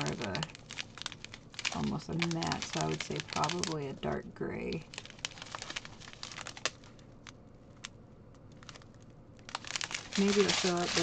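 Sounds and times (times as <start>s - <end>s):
plastic bags crinkling: 0.0s - 7.9s, 8.5s - 11.0s.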